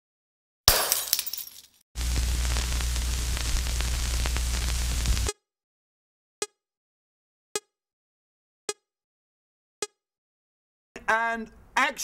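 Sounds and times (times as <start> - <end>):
scattered crackles: 2.0 - 5.3.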